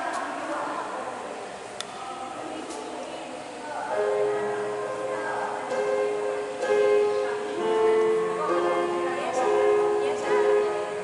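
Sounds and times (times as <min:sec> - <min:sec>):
held church music chord: 0:03.8 - 0:11.0.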